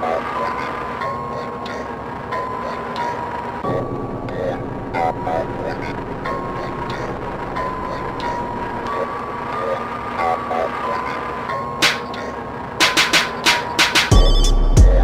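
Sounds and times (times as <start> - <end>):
slowed muffled voices: 0.0 - 12.8
dense noisy background: 0.0 - 15.0.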